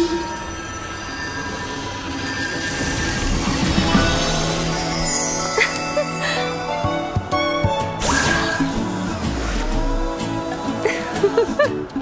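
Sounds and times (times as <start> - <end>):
synthesized magic shimmer: 0.0 - 6.7.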